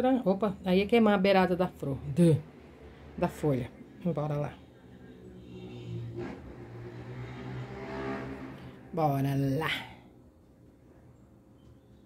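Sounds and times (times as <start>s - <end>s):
vehicle engine hum: 0.8s - 11.5s.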